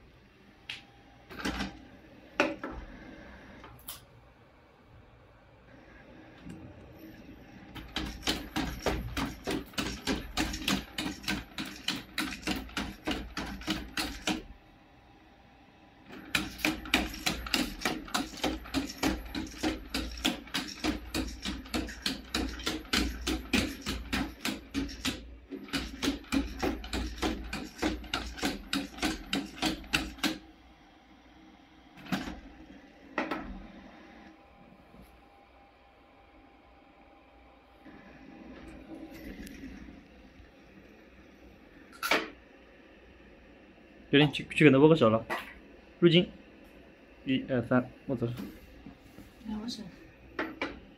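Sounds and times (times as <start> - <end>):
robot feet tapping on tile: 16.3 - 30.4.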